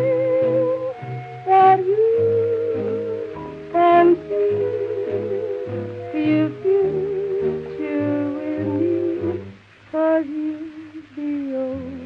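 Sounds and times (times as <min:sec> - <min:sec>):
instrumental swing jazz: 0:00.0 - 0:12.0.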